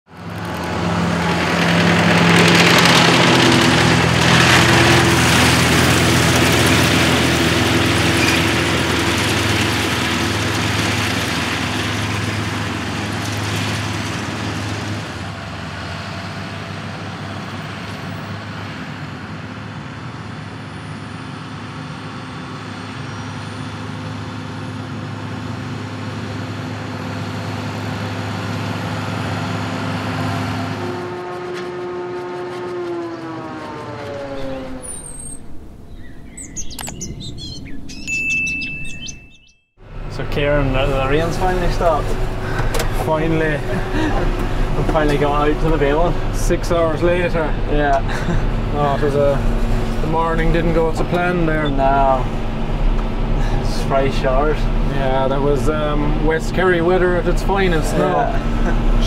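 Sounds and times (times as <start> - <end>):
tractor diesel engine running: 0.1 - 59.0.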